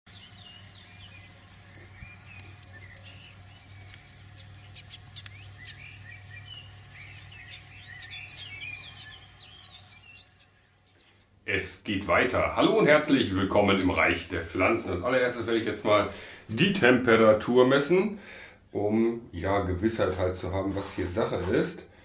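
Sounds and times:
bird chirping high: 0.1 - 11.4
other birds calling: 0.1 - 11.4
low steady hum: 0.1 - 22.0.

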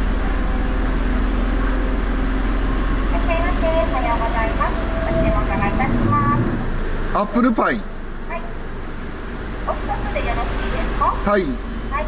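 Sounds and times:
car engine idling hum: 0.0 - 12.0
high voice speaking: 3.2 - 6.6.

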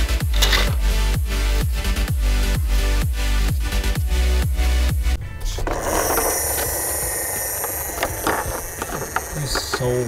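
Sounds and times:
plastic clicks: 5.6 - 10.0
plastic toy rattling: 5.6 - 10.0.

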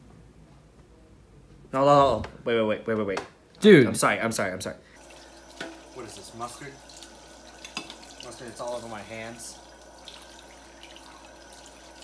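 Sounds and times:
faucet running: 5.0 - 12.0.

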